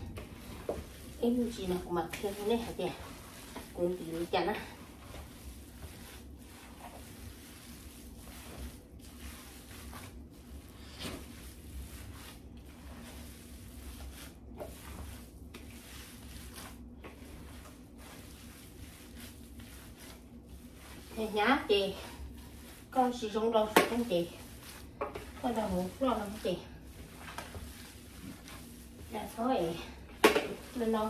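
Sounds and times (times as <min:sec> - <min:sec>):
low steady hum: 0:00.0 - 0:31.0.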